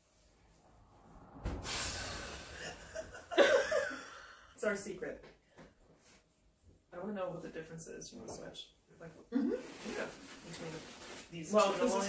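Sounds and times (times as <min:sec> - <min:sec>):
breathy hiss of held-in laughter: 0:02.4 - 0:04.5.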